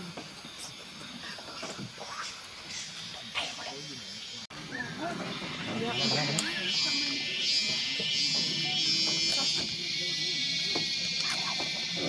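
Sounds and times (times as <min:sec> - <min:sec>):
people talking quietly: 0:00.0 - 0:12.0.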